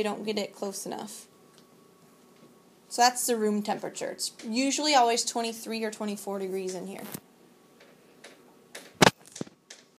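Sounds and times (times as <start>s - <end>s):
handling clicks and knocks: 7.8s - 10.0s.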